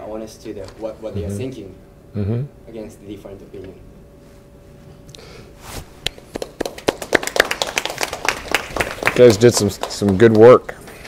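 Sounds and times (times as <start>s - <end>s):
people applauding: 6.3s - 10.7s.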